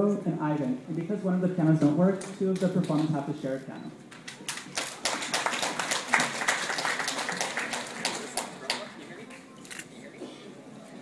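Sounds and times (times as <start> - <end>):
audience clapping: 4.1 - 9.5.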